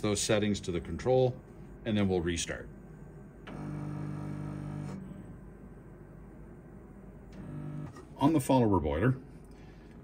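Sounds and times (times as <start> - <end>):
boiler low-pitched hum: 0.0 - 8.2.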